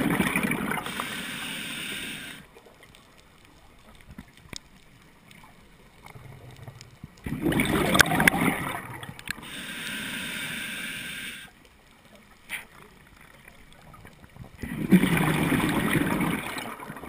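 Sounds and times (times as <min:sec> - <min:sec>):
underwater breath bubbling: 0:00.0 - 0:02.6, 0:06.1 - 0:11.6, 0:14.6 - 0:17.0
faint clicks: 0:00.8 - 0:07.3, 0:07.9 - 0:14.6.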